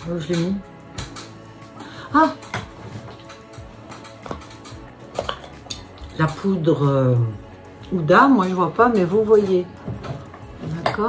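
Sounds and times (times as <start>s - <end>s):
makeup containers clicking and knocking: 3.9s - 6.6s, 8.4s - 11.0s.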